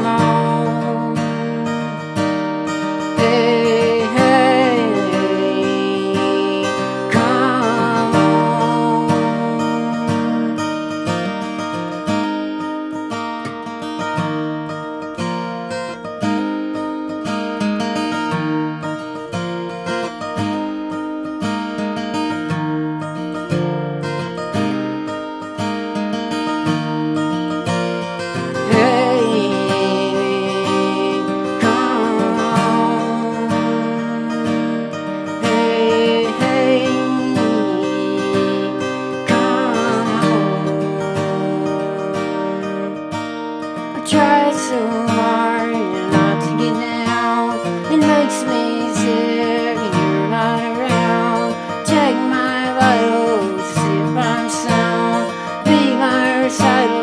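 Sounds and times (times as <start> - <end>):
man singing: 0.0 - 2.0, 3.2 - 10.6, 28.5 - 43.0, 44.0 - 57.0
acoustic guitar strumming: 0.0 - 57.0.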